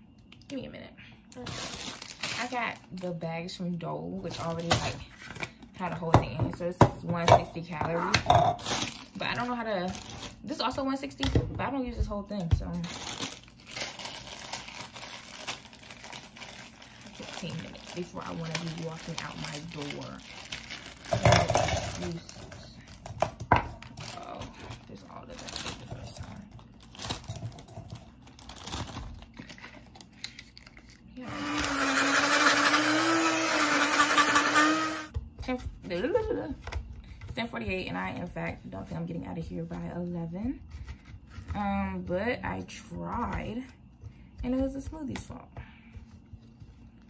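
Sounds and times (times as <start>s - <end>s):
plastic bag crinkling: 1.3s - 3.0s, 8.6s - 10.8s, 12.7s - 23.1s, 23.8s - 31.1s
electric blender running: 31.2s - 35.2s.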